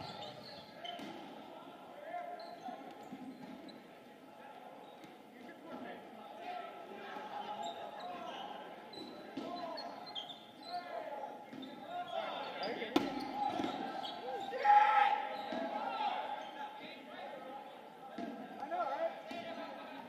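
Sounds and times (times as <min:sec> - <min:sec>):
players shouting in gym: 0:10.6 - 0:19.7.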